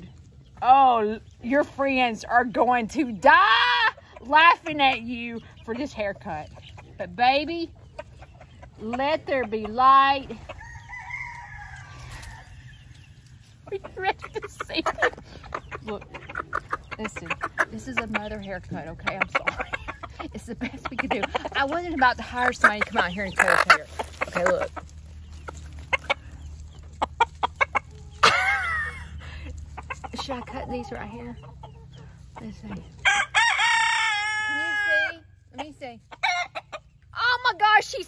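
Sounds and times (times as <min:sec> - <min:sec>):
chicken clucking: 0:00.0 - 0:37.6
faint rooster crowing: 0:10.6 - 0:12.7.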